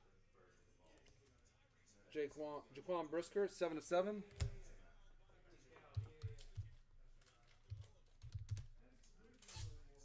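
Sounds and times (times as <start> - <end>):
keyboard typing: 4.3 - 4.7, 5.8 - 8.8.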